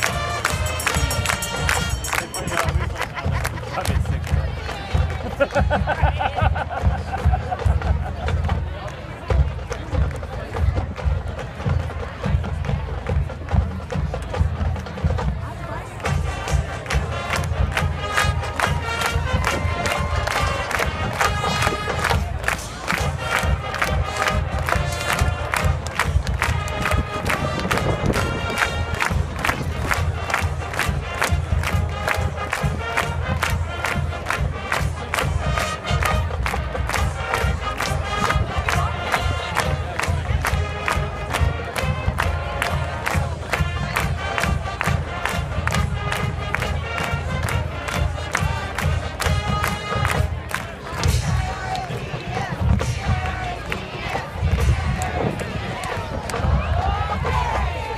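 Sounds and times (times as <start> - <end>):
brass melody: 0.0 - 3.0, 16.1 - 51.6
crowd noise: 0.0 - 57.9
steady drum beat: 0.0 - 57.9.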